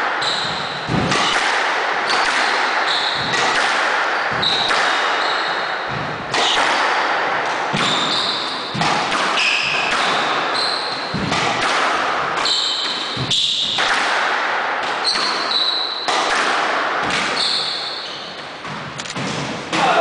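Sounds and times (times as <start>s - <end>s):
squash ball strikes echoing: 0.0s - 20.0s
shoes squeaking on floor: 0.2s - 0.9s, 2.2s - 3.5s, 4.1s - 6.6s, 7.7s - 8.8s, 9.4s - 11.4s, 12.4s - 13.9s, 14.9s - 16.1s, 17.2s - 18.7s.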